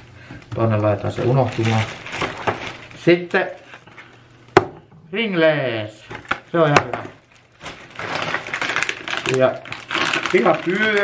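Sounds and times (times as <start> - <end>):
plastic bag rustling: 0.0 - 4.5, 6.1 - 11.0.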